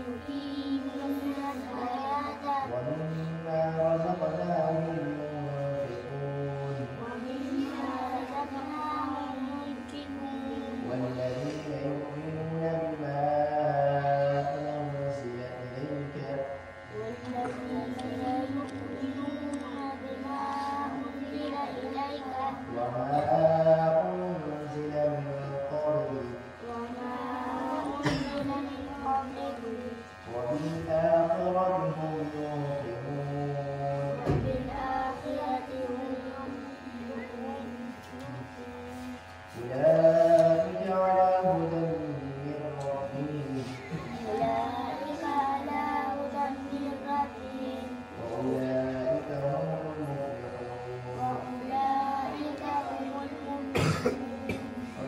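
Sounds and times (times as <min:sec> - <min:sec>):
person chanting recitation: 0:00.0 - 0:55.0.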